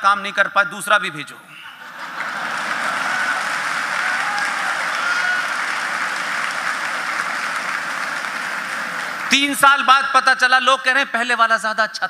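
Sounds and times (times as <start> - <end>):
audience applauding: 1.9 - 9.5.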